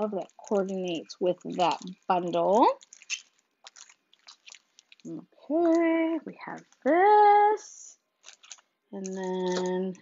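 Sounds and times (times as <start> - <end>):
plastic packaging crinkling: 0.0 - 7.3, 8.1 - 10.0.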